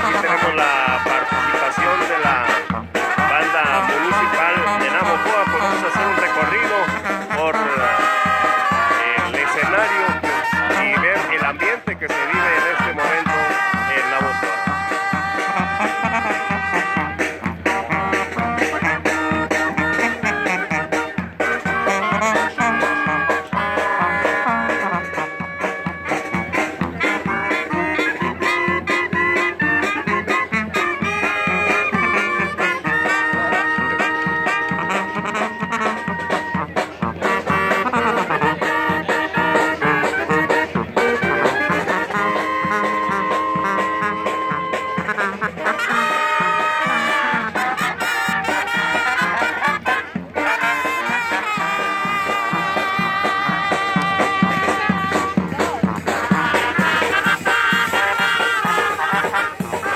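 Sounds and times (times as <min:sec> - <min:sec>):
sousaphone holding notes: 0:00.0 - 0:59.9
steady drumbeat: 0:00.0 - 0:59.9
trumpets: 0:00.0 - 0:59.9.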